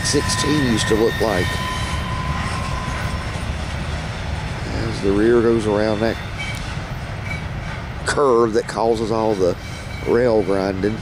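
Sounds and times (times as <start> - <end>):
train wheels squealing: 0.0 - 7.9, 8.7 - 11.0
freight train rumbling: 0.0 - 11.0.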